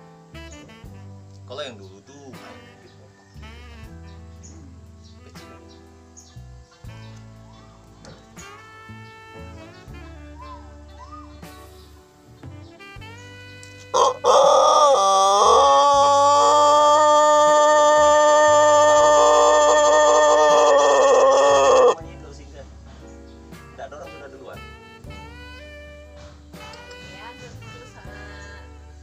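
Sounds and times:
rooster long crow: 14.0 - 22.0.

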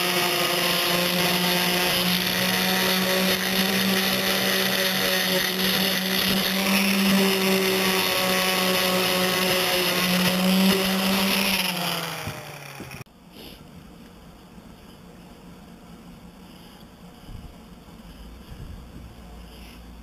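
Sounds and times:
electric sander running: 0.0 - 13.1
motor winding down: 0.0 - 13.1.

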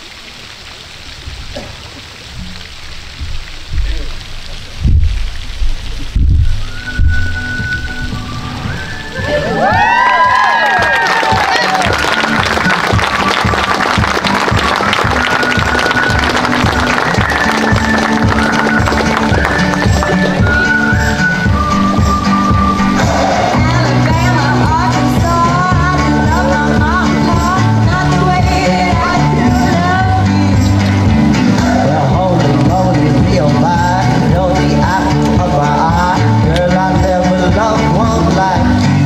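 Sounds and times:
low thumps: 1.2 - 10.0, 12.7 - 31.6
music with a steady beat: 6.2 - 10.4, 11.1 - 39.0
guests clapping and cheering: 8.8 - 30.0.

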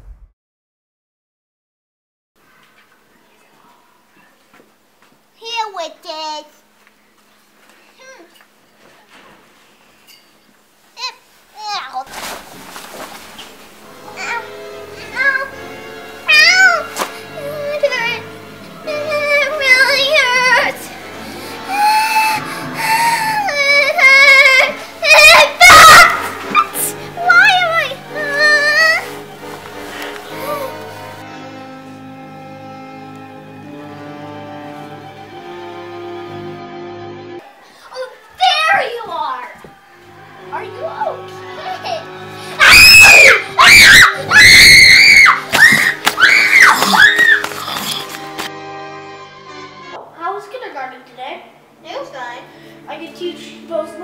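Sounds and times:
background music: 13.3 - 54.0
child wailing: 16.2 - 18.2, 18.8 - 20.8, 21.6 - 29.1, 30.3 - 30.8, 40.9 - 48.2
girls screaming: 21.7 - 27.0, 42.5 - 48.1.

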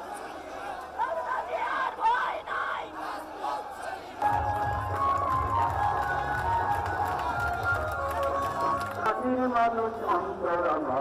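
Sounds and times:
crowd shouting and chanting: 0.0 - 10.6.

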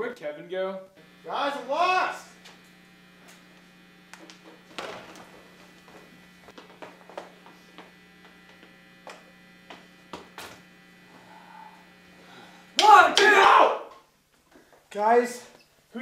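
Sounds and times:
amplifier mains hum: 0.4 - 16.0.

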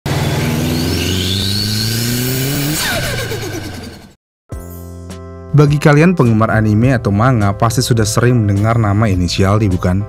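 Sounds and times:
car engine accelerating: 0.1 - 4.2.

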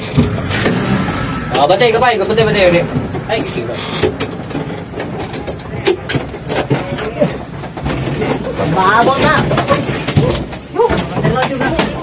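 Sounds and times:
car engine running inside cabin: 0.0 - 12.0
knocks and rattles: 0.0 - 12.0.

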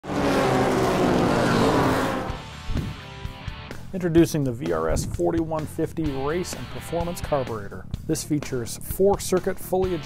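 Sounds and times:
race car engine at high revs: 0.0 - 3.2.

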